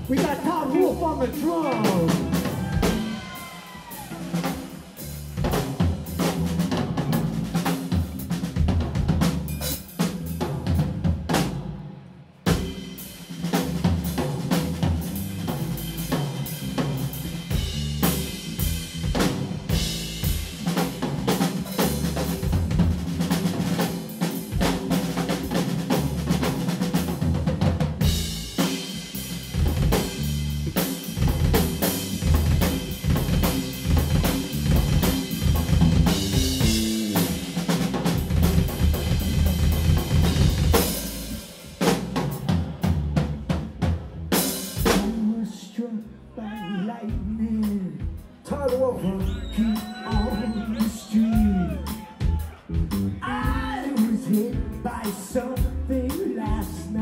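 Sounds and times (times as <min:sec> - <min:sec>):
drum kit solo: 0:00.0 - 0:45.4, 0:46.5 - 0:57.0.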